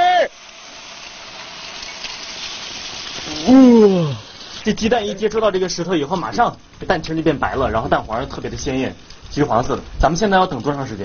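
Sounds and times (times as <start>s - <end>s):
eggs sizzling in oil: 0.0s - 11.0s.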